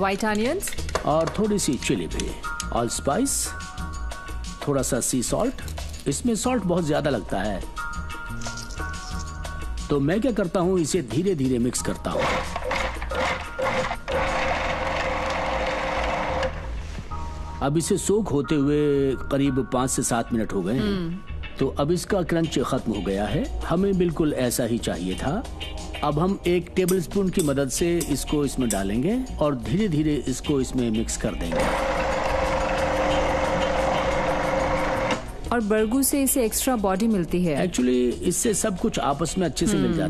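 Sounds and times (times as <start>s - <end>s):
food processor motor whirring: 12.0s - 16.7s, 31.5s - 35.3s.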